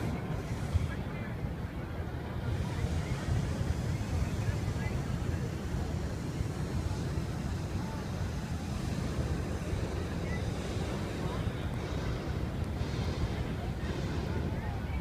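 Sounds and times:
outdoor crowd chatter: 0:00.0 - 0:15.0
wind buffeting microphone: 0:00.0 - 0:15.0.

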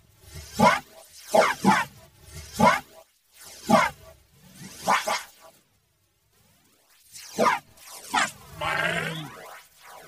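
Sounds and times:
cartoon falling swoops: 0:04.6 - 0:05.4, 0:07.1 - 0:10.0.

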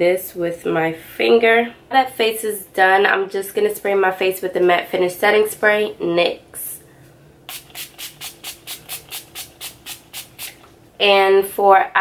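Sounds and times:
spray bottle hissing sprays: 0:07.5 - 0:10.6.

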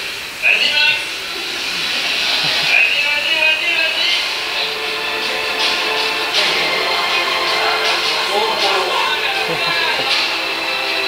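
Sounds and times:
film soundtrack over loudspeakers: 0:00.0 - 0:11.0
voice in music: 0:01.4 - 0:11.0.

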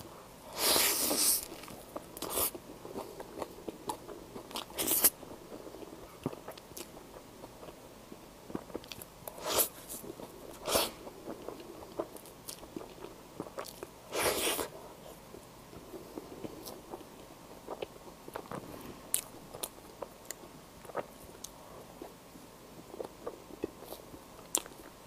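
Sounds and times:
person chewing: 0:00.5 - 0:07.8, 0:08.5 - 0:14.7, 0:16.4 - 0:22.2, 0:22.9 - 0:24.9.

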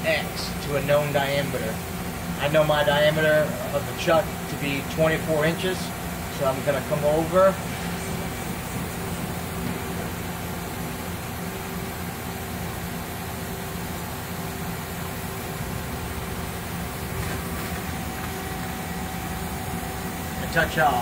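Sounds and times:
machine humming: 0:00.0 - 0:21.0.

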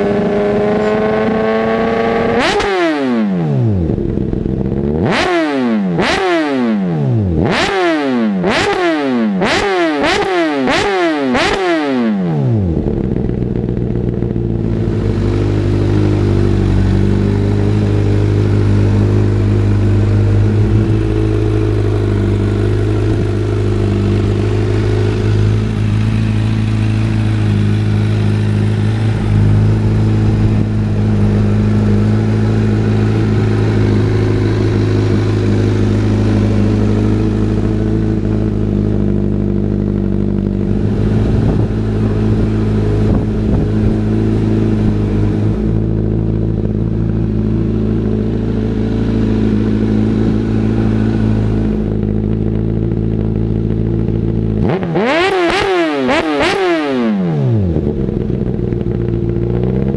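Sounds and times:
motorcycle engine revving: 0:00.0 - 0:59.9
motorcycle engine idling: 0:03.6 - 0:05.2, 0:12.5 - 0:56.6, 0:57.5 - 0:59.9.

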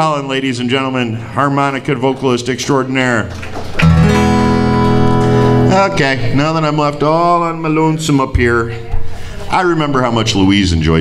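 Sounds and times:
acoustic guitar chord strummed: 0:03.8 - 0:06.6
person talking: 0:05.6 - 0:11.0.

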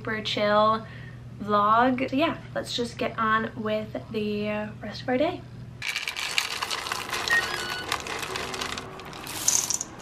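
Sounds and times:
chocolate chips pouring into metal bowl: 0:05.8 - 0:10.0.

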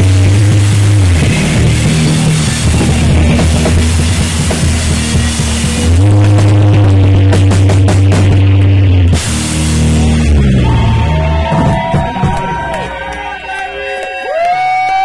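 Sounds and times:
drum hits: 0:00.0 - 0:13.1
distorted electric guitar chords: 0:00.0 - 0:13.8
bass guitar: 0:00.0 - 0:15.0.

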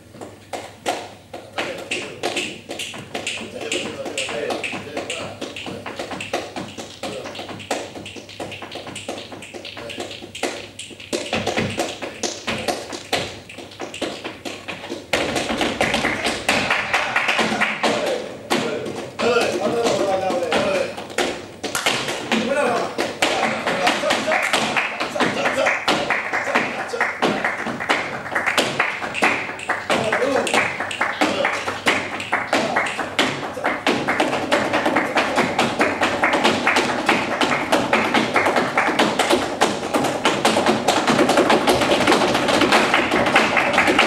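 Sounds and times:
heeled shoes tapping wooden stage: 0:00.0 - 0:44.0
sharp hand claps: 0:00.2 - 0:44.0
flamenco guitar playing softly: 0:01.8 - 0:24.2.

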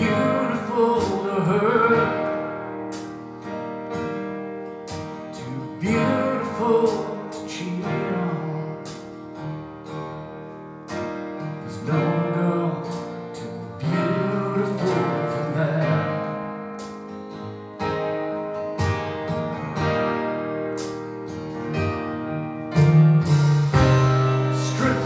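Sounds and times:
strummed acoustic guitar: 0:00.0 - 0:25.0
live band music: 0:16.7 - 0:25.0.

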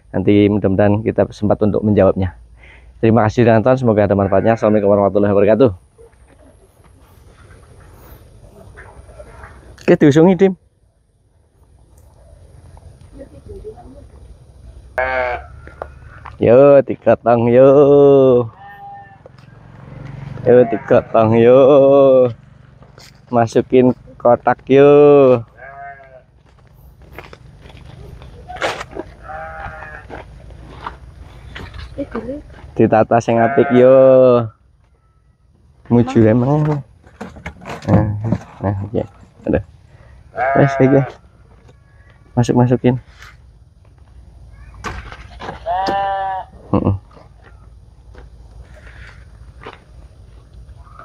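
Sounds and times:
livestock bleat: 0:04.1 - 0:04.8, 0:15.0 - 0:15.7, 0:18.2 - 0:21.4, 0:25.2 - 0:26.3, 0:29.2 - 0:30.2, 0:33.3 - 0:34.5, 0:40.3 - 0:41.3, 0:45.6 - 0:46.9
drawn-out animal call: 0:14.9 - 0:16.4, 0:17.6 - 0:24.2, 0:24.9 - 0:32.6, 0:33.3 - 0:36.5, 0:39.1 - 0:42.3, 0:45.4 - 0:47.8, 0:48.6 - 0:51.0.

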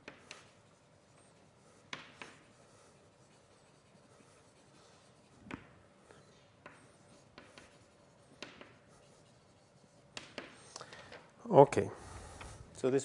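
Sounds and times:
writing tip tapping a board: 0:01.9 - 0:02.4, 0:06.6 - 0:08.8, 0:10.1 - 0:10.6.

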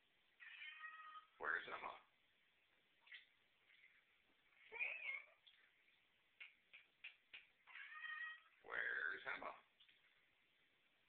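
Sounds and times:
cat meowing: 0:00.4 - 0:01.3, 0:07.6 - 0:08.6.

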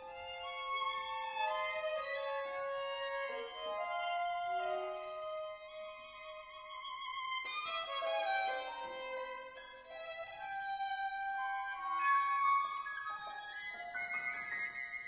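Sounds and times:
solo violin: 0:00.0 - 0:15.0.

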